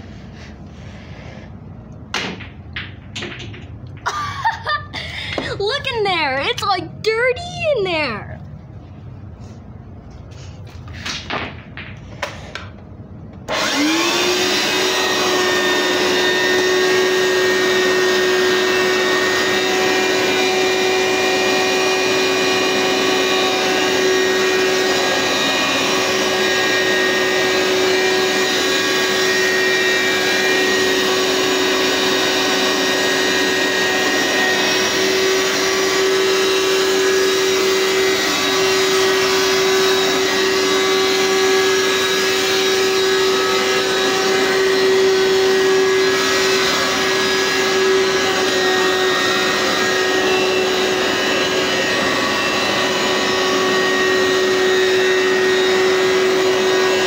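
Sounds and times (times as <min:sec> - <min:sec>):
carpet cleaner motor humming: 0:13.4 - 0:57.0.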